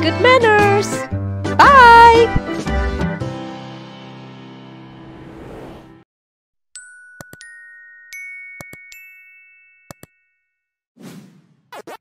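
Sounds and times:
bright chime tones: 6.8 - 10.6.

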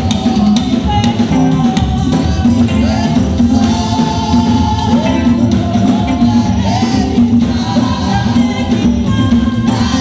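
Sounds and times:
band accompaniment: 0.0 - 10.0
women singing together: 0.0 - 10.0.

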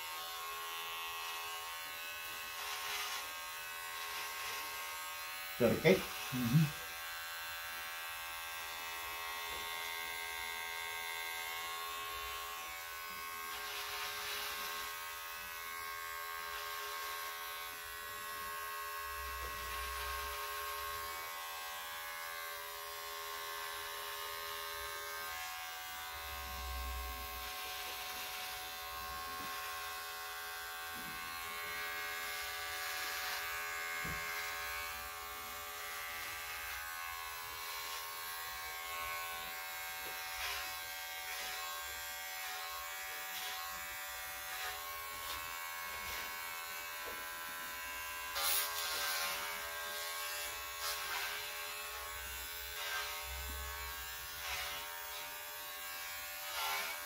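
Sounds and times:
electric hair clippers buzzing: 0.0 - 57.0.

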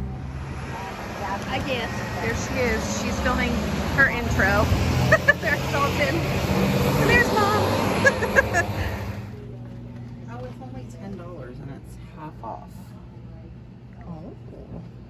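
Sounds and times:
people chatting: 0.0 - 6.2, 7.0 - 8.2, 10.3 - 15.0
car engine humming: 0.0 - 10.5.

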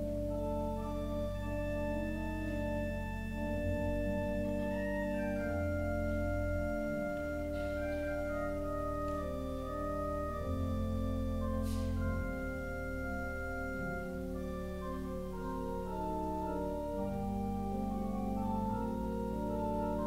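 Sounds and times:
organ playing slow hymn: 0.0 - 20.0.

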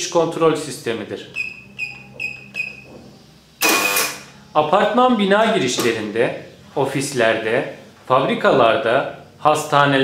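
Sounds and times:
keypad beeps: 1.4 - 2.9
electric door lock buzz: 3.6 - 4.3.

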